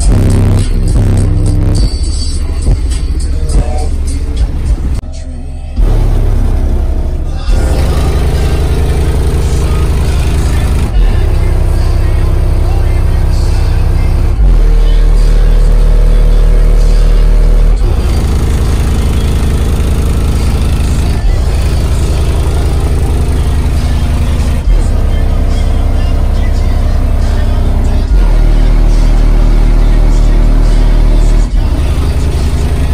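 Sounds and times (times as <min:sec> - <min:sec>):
subwoofers playing loud bass: 0:00.0 - 0:32.9.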